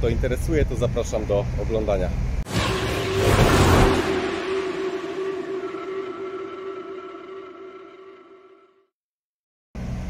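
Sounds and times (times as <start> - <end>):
noisy glitch hit: 2.4 - 8.2
steady ringing tone: 2.5 - 8.8.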